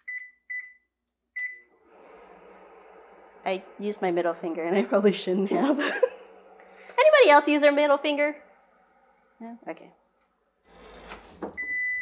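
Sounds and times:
microwave keypad beep: 0.0 - 1.6, 11.6 - 12.0.

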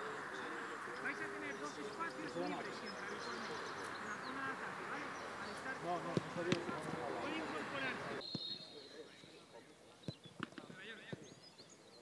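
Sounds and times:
indistinct voices talking and calling: 0.0 - 12.0
small birds chirping: 0.0 - 12.0.

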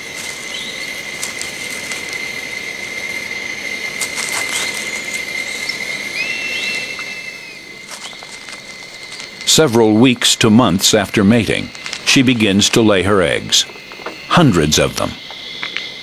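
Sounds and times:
high whistle-like tone: 5.7 - 7.6.

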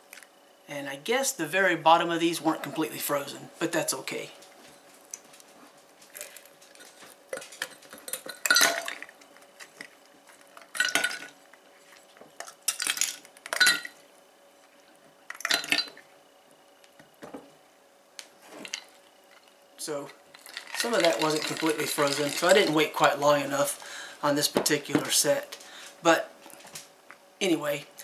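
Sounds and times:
ice cubes clinking against glass: 8.1 - 9.0, 20.4 - 22.8.

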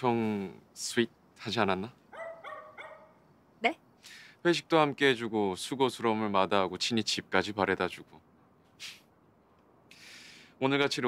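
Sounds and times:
small dog yapping: 2.1 - 3.2.

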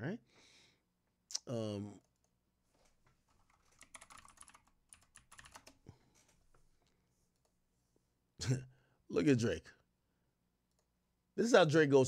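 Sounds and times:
computer keyboard keystrokes: 3.3 - 5.8.

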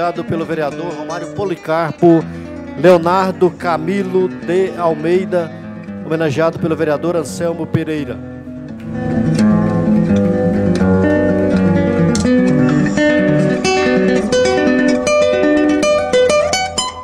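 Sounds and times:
acoustic guitar music: 0.0 - 17.0.

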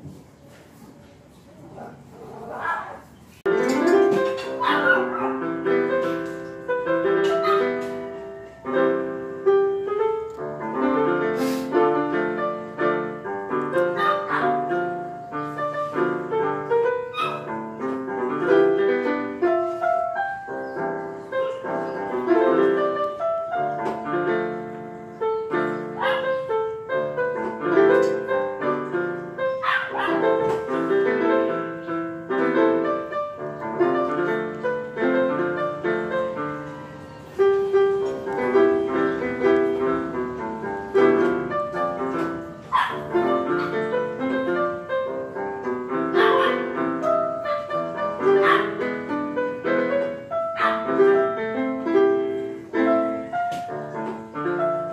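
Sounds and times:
electronic keyboard piano melody: 3.0 - 54.9.

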